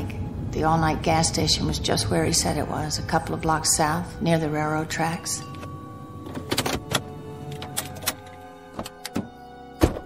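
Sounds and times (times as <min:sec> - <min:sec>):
music underscore: 0:00.0 - 0:10.0
car door shutting: 0:06.2 - 0:10.0.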